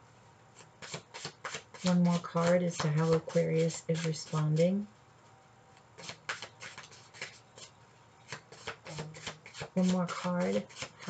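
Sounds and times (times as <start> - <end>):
cards being shuffled: 6.0 - 7.7.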